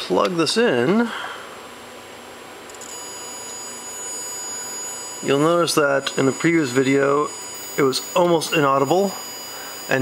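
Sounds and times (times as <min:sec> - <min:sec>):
electronic buzz: 0:02.6 - 0:10.0
steady high tones: 0:02.7 - 0:10.0.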